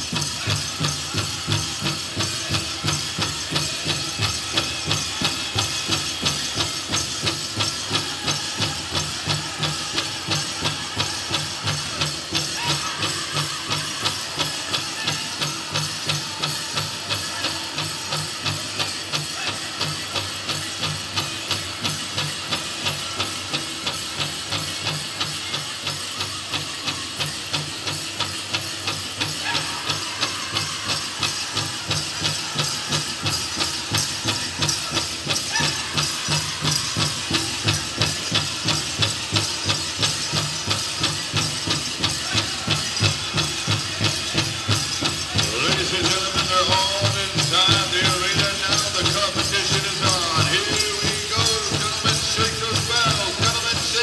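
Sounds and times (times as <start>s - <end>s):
big drum steady fast beat: 0.0s - 54.0s.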